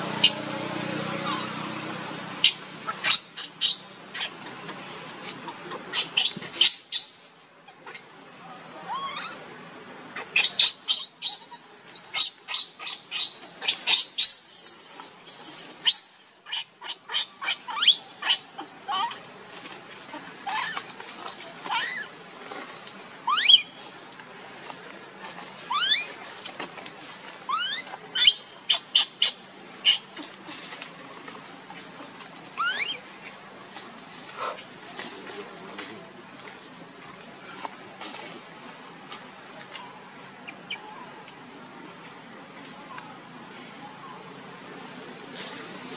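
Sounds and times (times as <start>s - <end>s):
baby monkey screaming: 1.2s - 1.6s, 2.4s - 4.4s, 5.7s - 8.0s, 8.8s - 9.4s, 10.2s - 19.2s, 20.4s - 20.8s, 21.6s - 22.1s, 23.3s - 23.7s, 25.6s - 26.1s, 27.5s - 30.1s, 32.6s - 33.0s.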